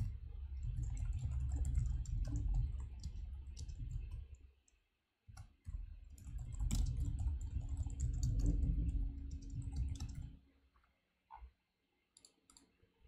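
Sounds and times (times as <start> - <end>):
computer keyboard typing: 0.6 - 4.3, 6.2 - 10.3.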